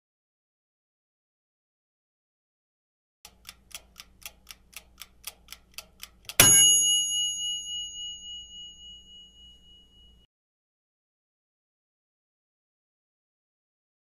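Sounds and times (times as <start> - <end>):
clock ticking: 3.2 - 7.1
bell ding: 6.4 - 10.3.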